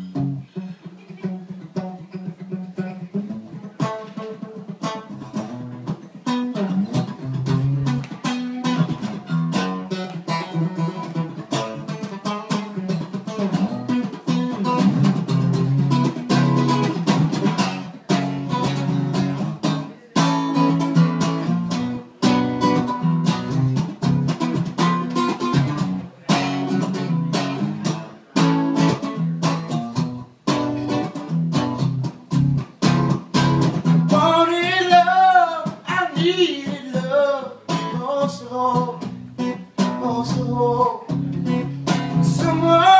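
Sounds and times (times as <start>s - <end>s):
acoustic guitar strumming: 0.0s - 42.9s.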